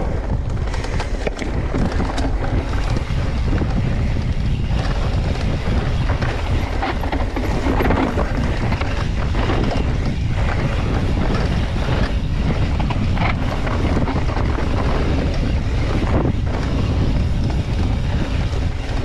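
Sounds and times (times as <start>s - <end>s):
bike tyres rolling on dirt: 0.0s - 19.0s
wind rushing over microphone: 0.0s - 19.0s.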